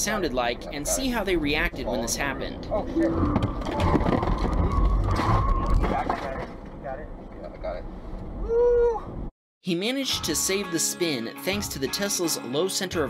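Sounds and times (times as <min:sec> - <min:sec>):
road rumble inside car: 0:00.1 - 0:09.3
startled voices: 0:02.7 - 0:06.2.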